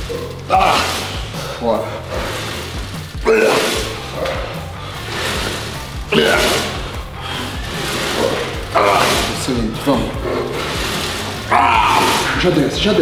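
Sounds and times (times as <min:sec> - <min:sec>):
man grunting: 0:00.1 - 0:01.9, 0:03.2 - 0:04.7, 0:06.1 - 0:06.9, 0:08.2 - 0:10.5, 0:11.5 - 0:12.5.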